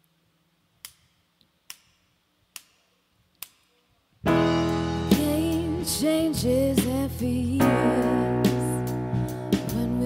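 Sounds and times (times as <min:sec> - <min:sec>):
band playing: 0:04.3 - 0:10.0.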